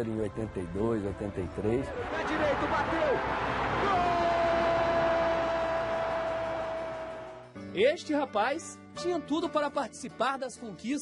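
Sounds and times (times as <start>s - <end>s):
stadium crowd noise: 1.5s - 7.5s
commentator's long goal shout: 2.0s - 6.8s.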